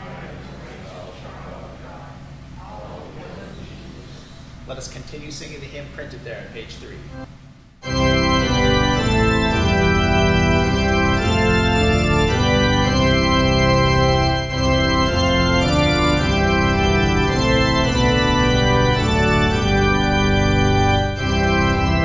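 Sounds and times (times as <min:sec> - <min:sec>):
organ playing a hymn: 0:06.7 - 0:22.0.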